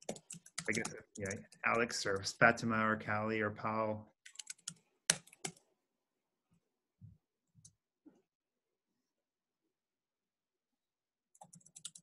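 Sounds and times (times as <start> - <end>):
keyboard keys clicking: 11.4 - 12.0.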